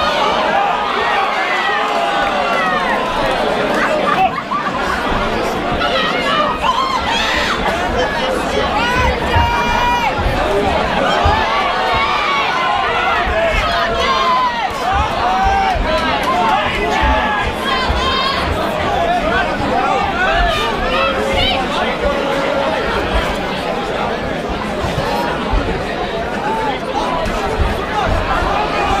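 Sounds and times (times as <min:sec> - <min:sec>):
crowd shouting and chattering: 0:00.0 - 0:29.0.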